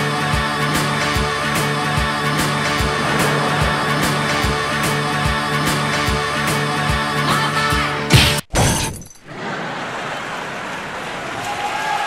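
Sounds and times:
loud shattering crash: 2.2s - 7.0s.

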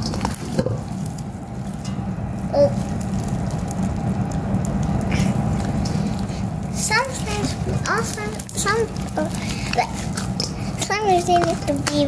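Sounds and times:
hands squishing foam-bead slime: 2.5s - 12.0s.

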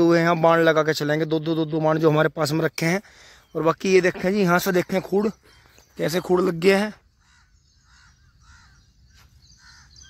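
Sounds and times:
faint crow cawing: 4.7s - 10.0s.

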